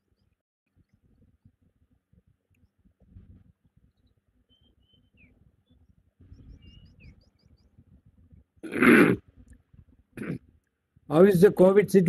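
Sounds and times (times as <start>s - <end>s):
low background noise: 0.0s - 12.0s
small birds chirping: 3.8s - 8.5s.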